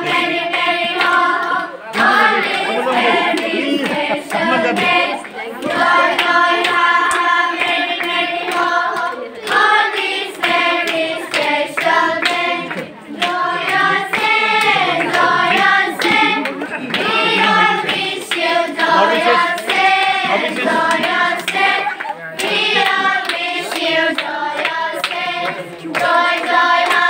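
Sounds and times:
group singing in unison: 0.0s - 27.0s
hands clapping in time: 0.0s - 27.0s.

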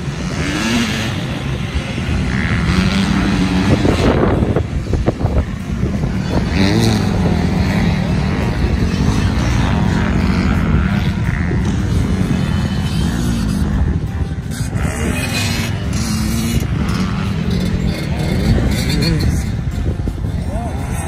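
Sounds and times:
dirt bike engines revving: 0.0s - 21.0s.

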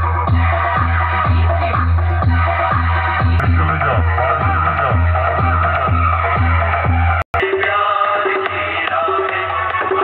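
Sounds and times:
loud electronic dance music: 0.0s - 10.0s.

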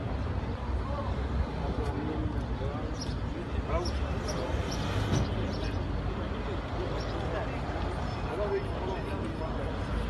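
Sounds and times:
people talking: 0.4s - 10.0s.

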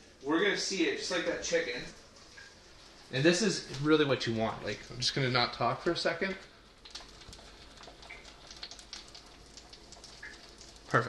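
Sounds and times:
fish sizzling in hot oil: 6.0s - 11.0s.

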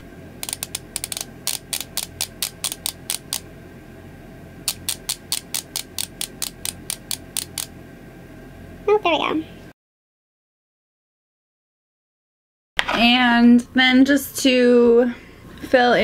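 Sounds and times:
click-pen dispenser clicking: 0.4s - 3.4s, 4.7s - 7.7s.

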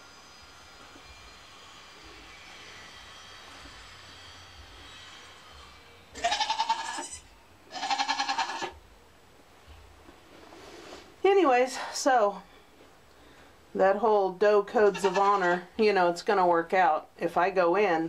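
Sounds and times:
goat bleating: 6.2s - 8.8s, 14.9s - 15.7s.

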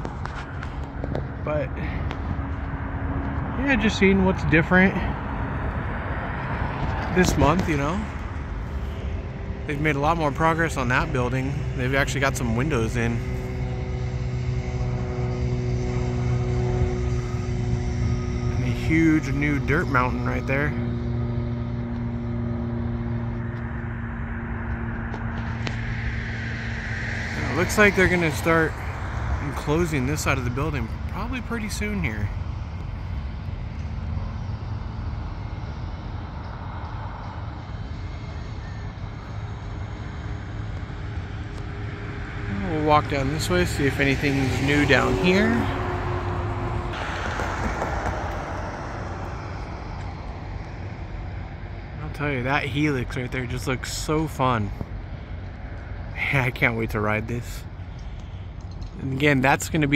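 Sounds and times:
engine humming: 0.0s - 59.9s
outdoor background noise: 0.0s - 59.9s
passing vehicle rushing: 0.0s - 59.9s
steady low traffic rumble: 0.0s - 59.9s.

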